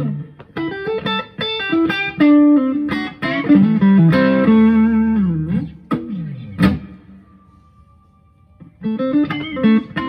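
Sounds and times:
clean electric guitar notes: 0:02.4 - 0:10.0.

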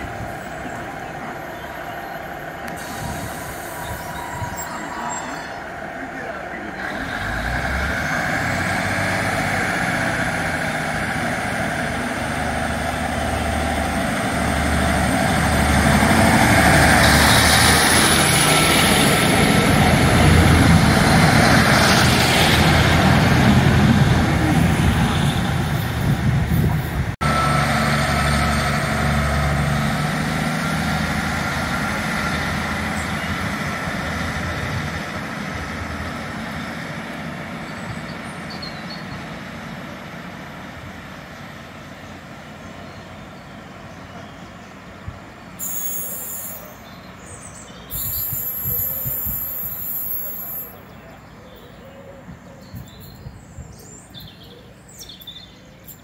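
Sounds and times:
diesel train engines throttling up: 0:00.0 - 0:51.3.

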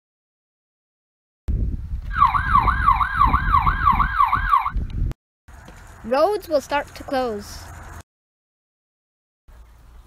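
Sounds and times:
siren wailing: 0:02.1 - 0:04.8.

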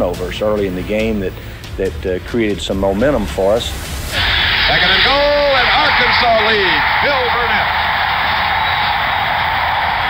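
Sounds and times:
stadium crowd cheering: 0:04.1 - 0:10.0.

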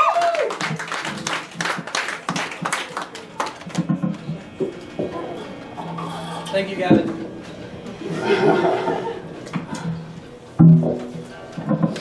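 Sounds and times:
audience clapping: 0:00.0 - 0:04.1.

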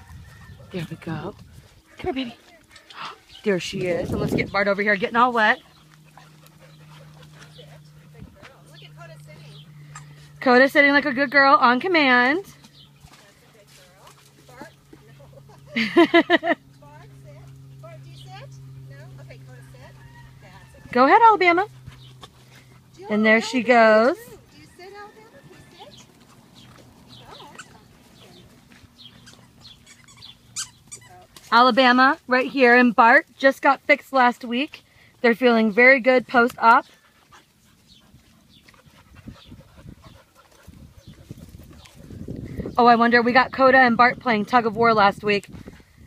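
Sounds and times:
low wavering whine: 0:00.0 - 0:29.6
steady low hum: 0:00.0 - 0:46.0
dog panting and whining: 0:05.0 - 0:09.6, 0:36.8 - 0:42.3.

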